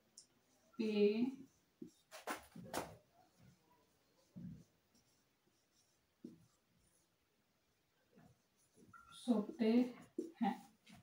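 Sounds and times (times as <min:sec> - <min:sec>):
marker pen on whiteboard: 0:00.0 - 0:11.0.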